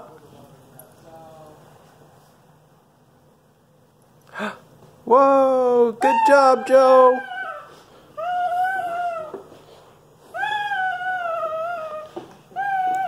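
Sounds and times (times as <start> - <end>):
baby high-pitched calls: 10.3 - 13.0.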